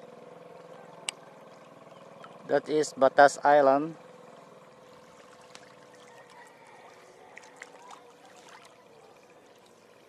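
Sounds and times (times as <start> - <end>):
faint steady hum: 0.0 - 10.0
water lapping at shoreline: 0.0 - 10.0
light water splashes: 0.4 - 2.7, 4.0 - 10.0.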